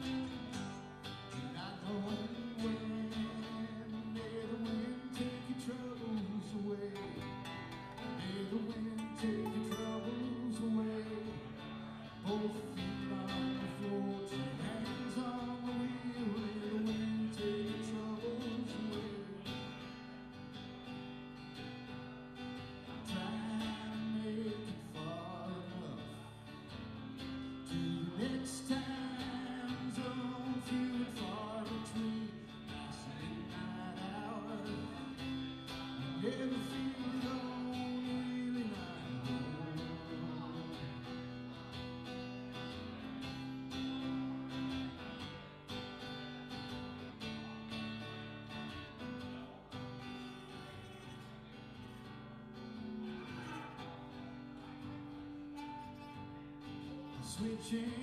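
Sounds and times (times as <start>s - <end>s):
acoustic guitars strumming chords: 0.0s - 58.0s.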